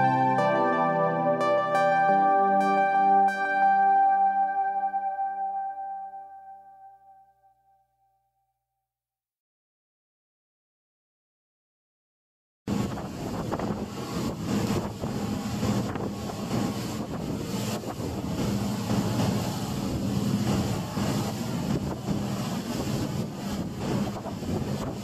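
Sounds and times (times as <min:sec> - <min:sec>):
water rushing along hull: 0:00.0 - 0:04.4, 0:12.7 - 0:25.0
motorboat engine droning: 0:12.7 - 0:25.0
wind buffeting microphone: 0:12.7 - 0:25.0.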